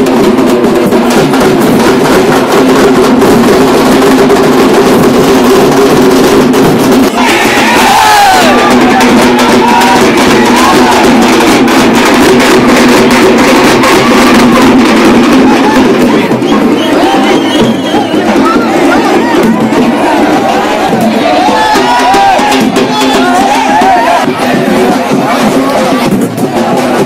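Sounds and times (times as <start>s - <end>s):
crowd noise: 0.0s - 27.0s
fast festival drumming: 0.0s - 27.0s.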